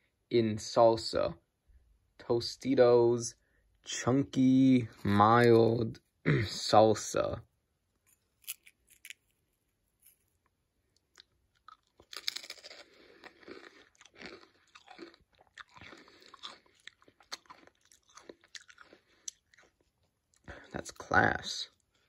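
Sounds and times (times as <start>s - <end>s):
person crunching a potato crisp: 8.1s - 21.1s.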